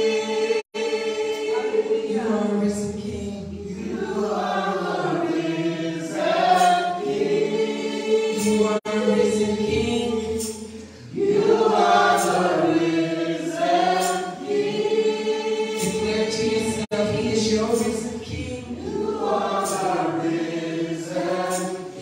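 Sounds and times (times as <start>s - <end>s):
vocal group singing gospel: 0.0s - 22.0s.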